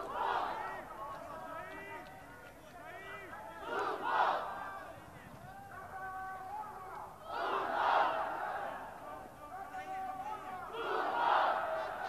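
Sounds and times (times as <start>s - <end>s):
stadium crowd shouting: 0.0s - 12.0s.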